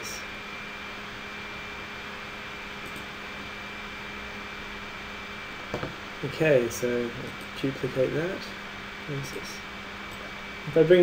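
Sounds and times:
background hiss and hum: 0:00.0 - 0:11.0.

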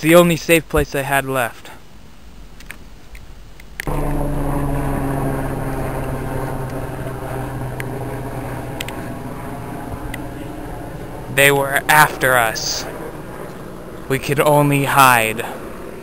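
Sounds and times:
helicopter rotor drone: 0:03.8 - 0:16.0.

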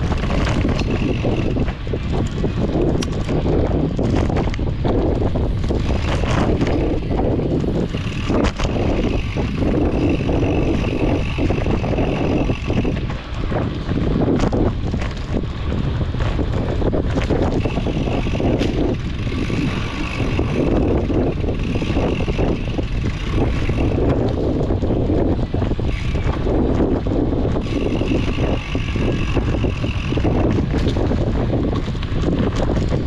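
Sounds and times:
bike knocks and rattles: 0:00.0 - 0:33.0
bike tyres rolling on dirt: 0:00.0 - 0:33.0
wind buffeting microphone: 0:00.0 - 0:33.0.

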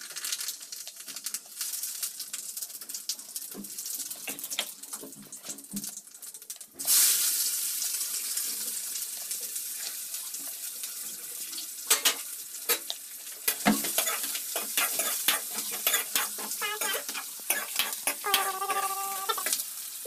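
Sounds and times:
onions sizzling in oil: 0:00.0 - 0:05.0, 0:05.9 - 0:20.0
metal ladle scraping a pan: 0:13.5 - 0:19.6.

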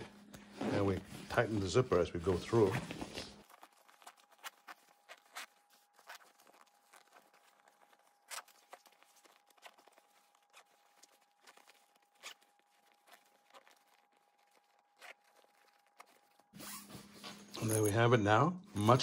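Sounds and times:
zipper clicks and rustles: 0:00.4 - 0:01.6, 0:02.3 - 0:17.9.

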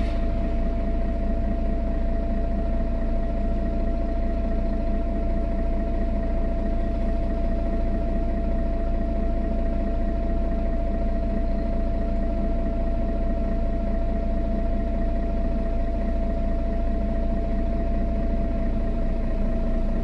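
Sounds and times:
bus diesel engine idling: 0:00.0 - 0:20.0.

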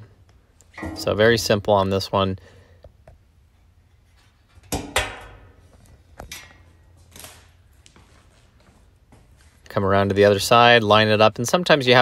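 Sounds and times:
sheet metal panels clanking: 0:00.7 - 0:01.6, 0:04.3 - 0:05.6.

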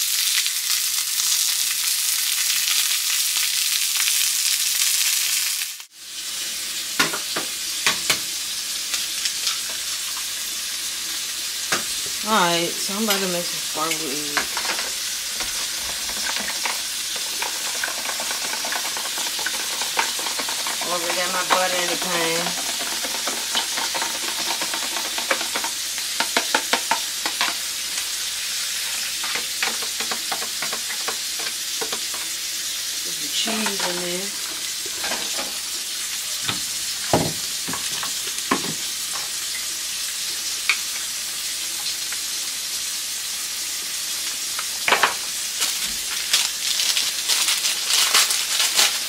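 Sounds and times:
eggs sizzling in frying pan: 0:00.0 - 0:49.0
utensils knocking: 0:12.9 - 0:27.7, 0:29.2 - 0:32.3
fork rattling against bowl: 0:14.3 - 0:27.6
crackling and clicking: 0:14.4 - 0:27.5.

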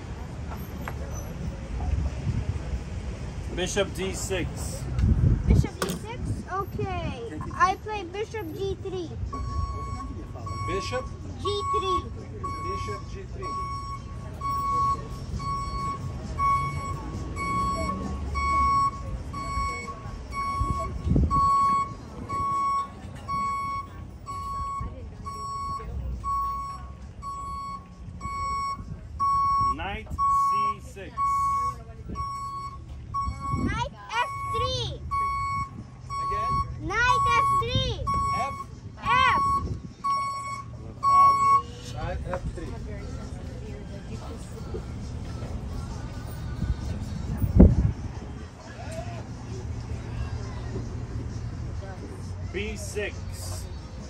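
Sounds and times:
electronic beeper beeping: 0:09.4 - 0:38.7, 0:39.3 - 0:41.8.

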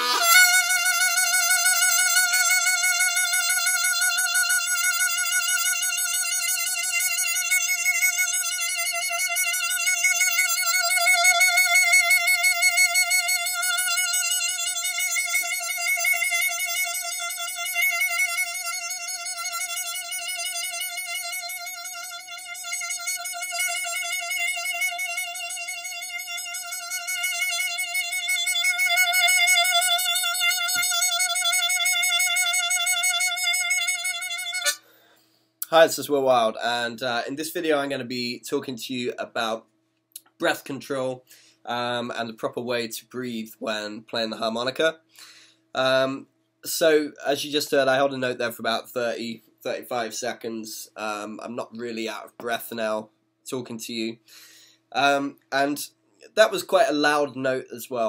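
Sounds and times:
harmonica holding a note: 0:00.0 - 0:35.1.

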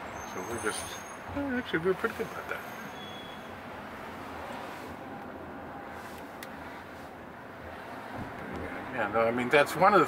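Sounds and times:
road and tyre noise in car: 0:00.0 - 0:10.0.

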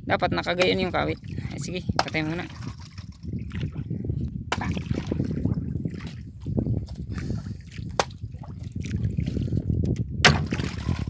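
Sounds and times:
water lapping against boat hull: 0:00.4 - 0:11.0.

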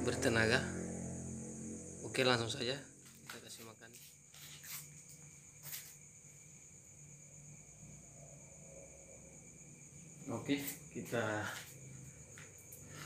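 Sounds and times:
crickets chirping: 0:00.0 - 0:13.0.

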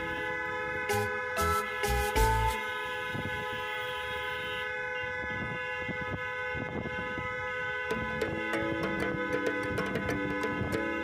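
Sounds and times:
vehicle horn toot: 0:00.0 - 0:10.0
low road rumble: 0:00.0 - 0:11.0.

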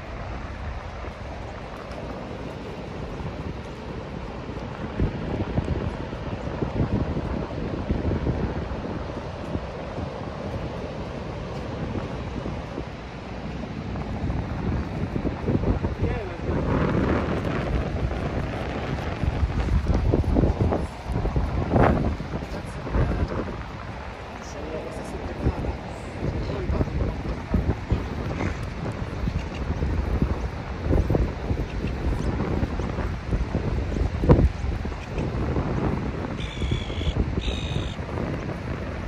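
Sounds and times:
wind gusting on microphone: 0:00.0 - 0:39.0
people talking: 0:16.0 - 0:16.7, 0:22.4 - 0:23.5, 0:24.4 - 0:28.7.

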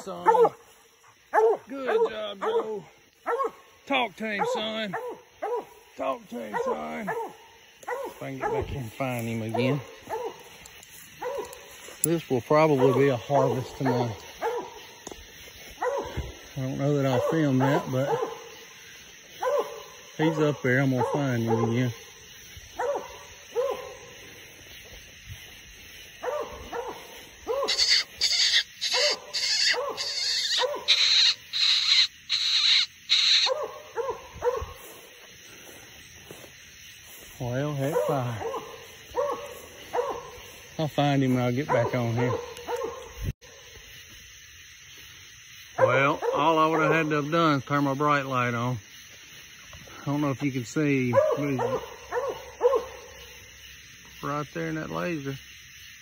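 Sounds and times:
hissing rustles: 0:00.0 - 0:20.4, 0:21.0 - 0:45.8
dog barking: 0:00.1 - 0:10.6, 0:11.2 - 0:11.8, 0:12.6 - 0:15.0, 0:15.7 - 0:18.7, 0:19.3 - 0:22.0, 0:22.7 - 0:24.2, 0:26.2 - 0:32.0, 0:33.2 - 0:35.1, 0:37.8 - 0:40.8, 0:41.5 - 0:43.3, 0:45.8 - 0:47.2, 0:51.0 - 0:53.4.

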